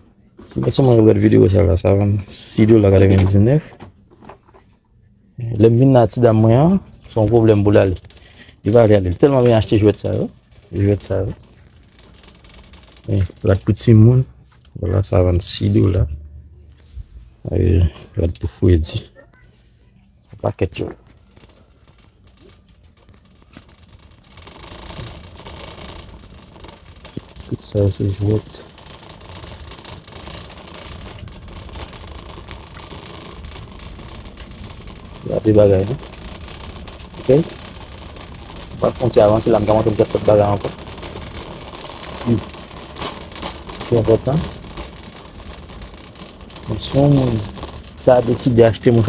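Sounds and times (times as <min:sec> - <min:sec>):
shopping cart wheels rattling: 0:06.0 - 0:14.4, 0:20.6 - 0:49.0
man speaking: 0:13.1 - 0:16.2, 0:17.4 - 0:19.2, 0:27.5 - 0:28.6, 0:35.2 - 0:36.0, 0:37.3 - 0:37.5, 0:38.8 - 0:40.8, 0:42.2 - 0:42.5, 0:43.9 - 0:44.5, 0:46.7 - 0:49.0.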